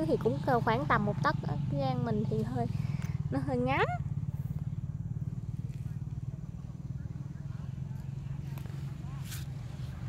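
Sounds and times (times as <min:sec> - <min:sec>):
small engine running: 0:00.0 - 0:10.0.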